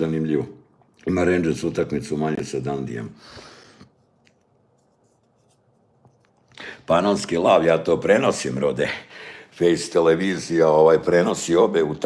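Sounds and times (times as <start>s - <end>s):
man speaking: 0.0s - 3.2s, 6.6s - 12.0s
breath drawn: 3.2s - 4.4s.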